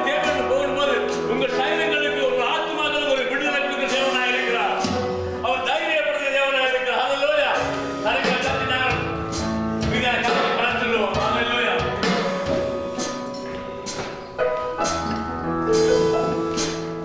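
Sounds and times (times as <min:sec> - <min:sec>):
man speaking into a microphone: 0:00.0 - 0:09.2, 0:09.8 - 0:12.0
keyboard: 0:00.0 - 0:17.0.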